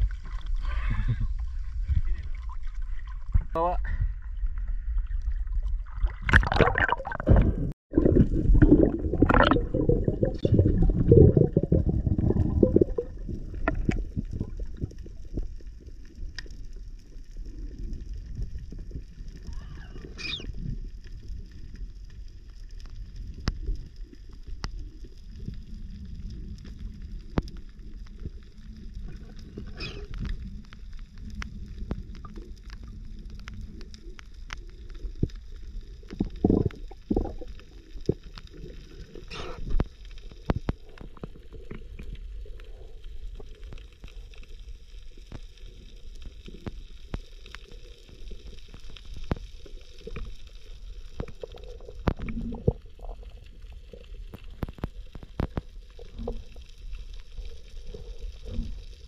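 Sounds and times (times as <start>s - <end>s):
crackling clicks underwater: 0.0s - 3.3s, 4.4s - 59.0s
low rumble of moving water: 0.0s - 59.0s.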